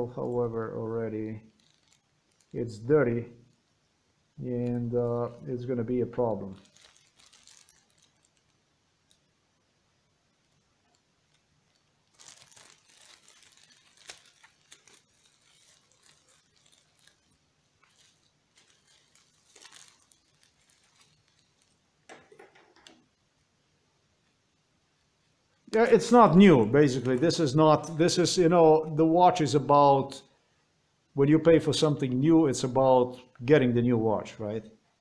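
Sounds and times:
bubble wrap crinkling: 0:01.0 - 0:02.8, 0:04.5 - 0:09.4, 0:10.4 - 0:23.2, 0:25.6 - 0:28.4.

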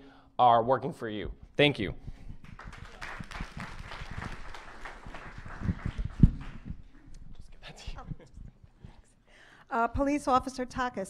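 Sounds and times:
audience applauding: 0:02.4 - 0:07.1.

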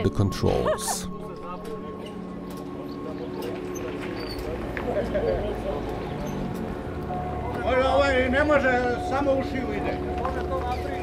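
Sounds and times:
distant indistinct voices: 0:01.2 - 0:11.0.

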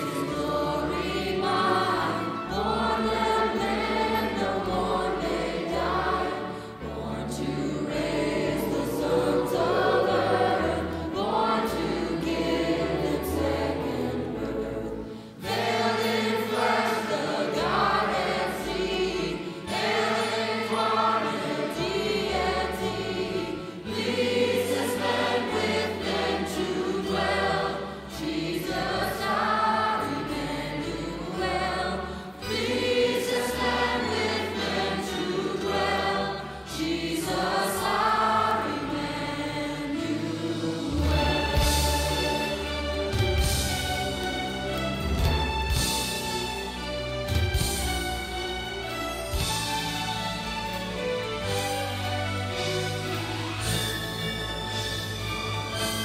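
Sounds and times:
choir singing a hymn: 0:00.0 - 0:56.0.

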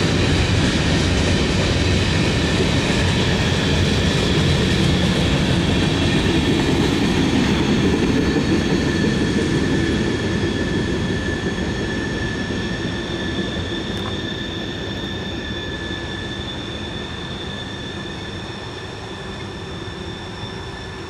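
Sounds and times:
freight train cars rumbling: 0:00.0 - 0:21.0.

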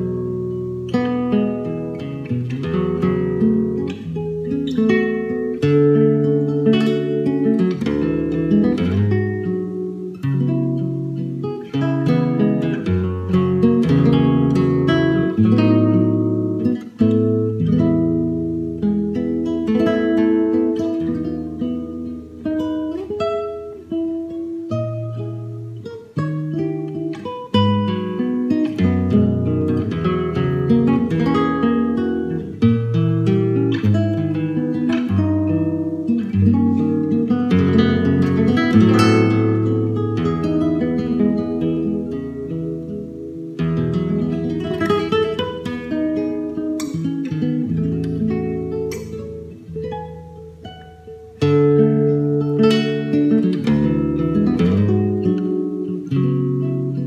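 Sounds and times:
classical guitar playing: 0:00.0 - 0:57.0.

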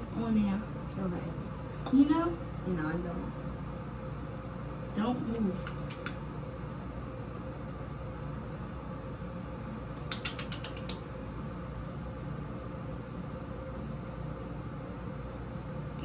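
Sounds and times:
low room hum: 0:00.0 - 0:16.0.

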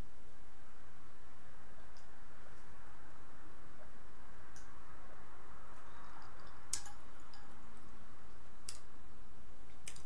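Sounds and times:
faint hiss and low hum: 0:00.0 - 0:10.0.

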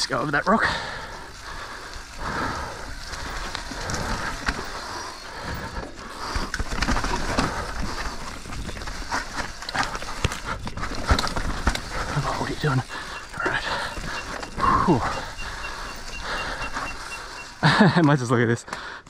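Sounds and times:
bike tyres crunching over dirt: 0:00.0 - 0:18.4
bike rattling clicks and knocks: 0:00.0 - 0:18.9.

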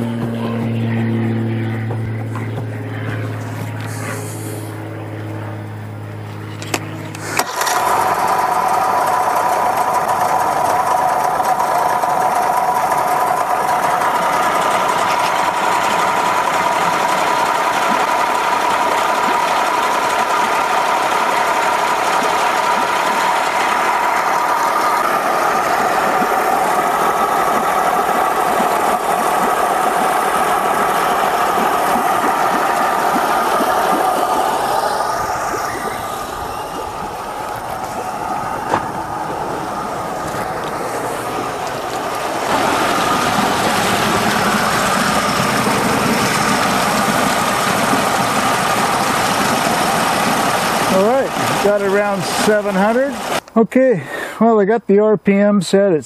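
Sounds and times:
outboard motor click: 0:00.0 - 0:53.6
outboard motor running: 0:00.0 - 0:54.3.

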